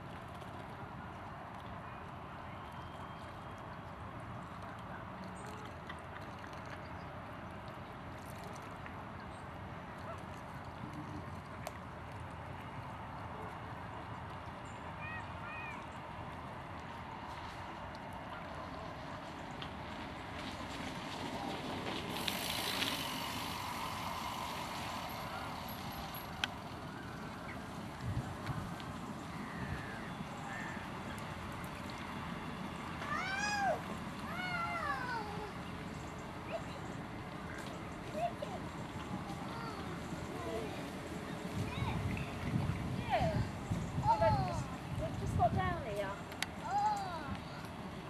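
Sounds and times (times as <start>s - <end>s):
outdoor background rumble: 16.8s - 48.0s
faint rising and falling calls: 22.0s - 28.3s.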